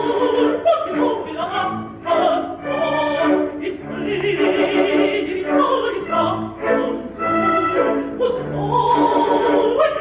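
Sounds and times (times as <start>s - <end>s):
operatic singing: 0.0s - 10.0s
orchestra playing: 1.8s - 9.7s.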